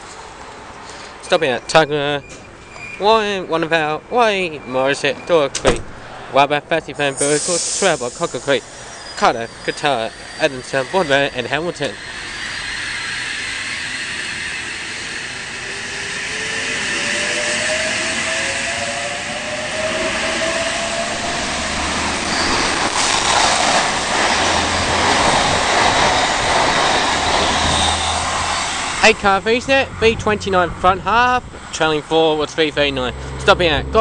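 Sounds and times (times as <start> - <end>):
train wheel and running noise: 7.0 - 32.8
electric train motor whine: 7.2 - 30.0.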